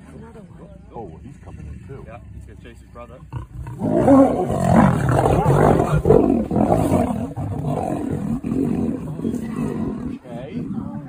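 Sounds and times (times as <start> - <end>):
lions growling and roaring: 0.0 - 11.0.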